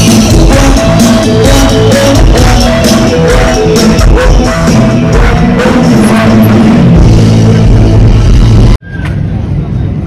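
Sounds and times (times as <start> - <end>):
loud music with heavy beat: 0.0 - 8.8
low outdoor rumble: 2.3 - 10.0.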